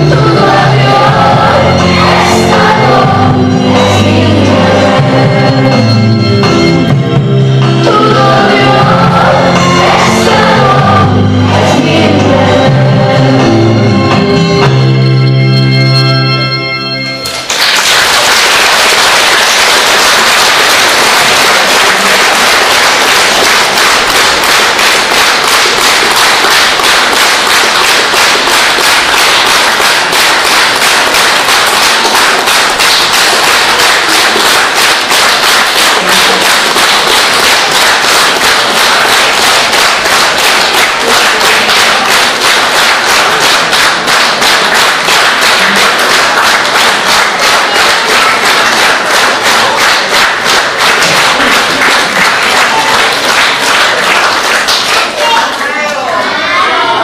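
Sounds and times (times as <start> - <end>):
audience applauding: 17.2 - 57.0.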